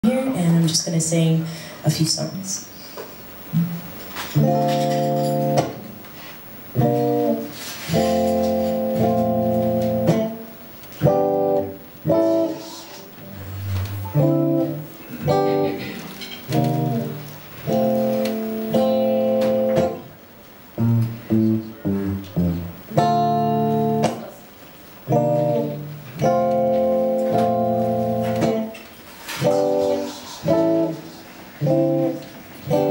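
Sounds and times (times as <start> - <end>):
clean electric guitar chords: 4.3 - 6.0, 6.7 - 20.2, 20.8 - 24.3, 25.0 - 28.8, 29.4 - 32.9.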